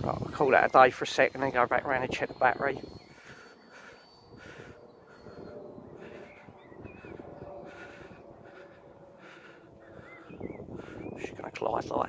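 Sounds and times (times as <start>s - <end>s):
harsh bird calls: 0.0s - 12.0s
thin high fan whine: 0.0s - 12.0s
bird chirps: 0.2s - 11.3s.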